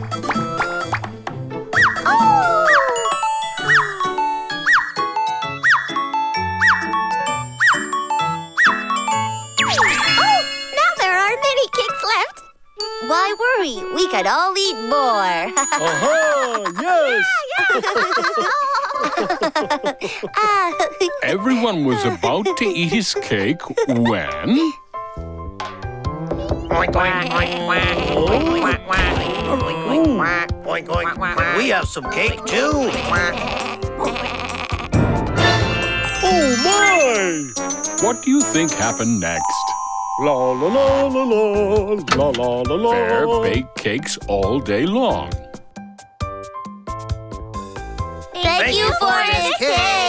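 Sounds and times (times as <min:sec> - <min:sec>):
cartoon background music: 0:00.0 - 0:50.0
children's music jingle: 0:02.8 - 0:17.2, 0:35.0 - 0:45.3
twinkling chime: 0:08.2 - 0:11.9, 0:14.8 - 0:17.2, 0:36.1 - 0:41.2.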